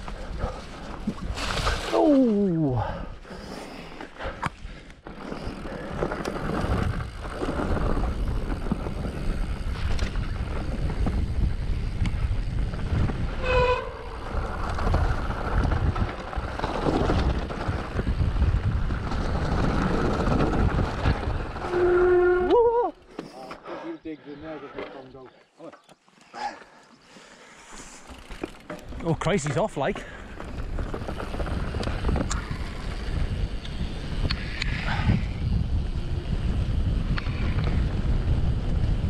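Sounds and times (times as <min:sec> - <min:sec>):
bike tyres rattling over ground: 0:05.0 - 0:22.8, 0:27.8 - 0:39.0
wind rushing over microphone: 0:05.6 - 0:22.5, 0:30.4 - 0:39.0
short high-pitched squeal: 0:13.3 - 0:14.2.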